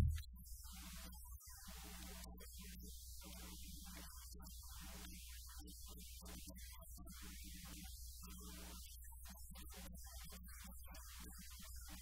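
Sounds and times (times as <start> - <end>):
faint mains hum: 0.0 - 12.0.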